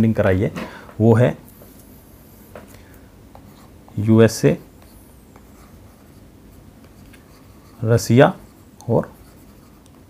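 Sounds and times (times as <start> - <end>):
stylus scratching on tablet: 4.8 - 10.0.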